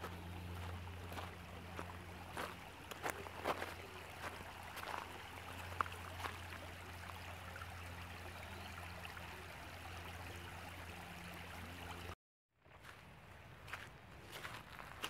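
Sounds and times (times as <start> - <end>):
constant low hum: 0.0 - 12.1
creek water babbling over stones: 0.0 - 12.2.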